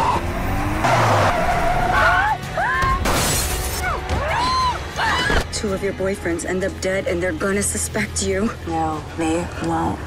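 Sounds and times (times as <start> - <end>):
car tyres squealing: 0.0 - 2.4
glass shattering: 3.0 - 3.8.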